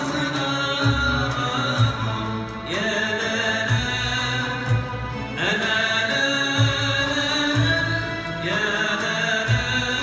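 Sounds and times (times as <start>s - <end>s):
orchestra with strings and drums: 0.0s - 10.0s.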